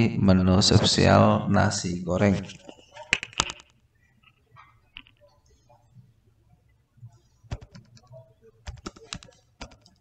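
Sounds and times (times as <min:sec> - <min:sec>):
typing on computer keyboard: 0:07.5 - 0:10.0.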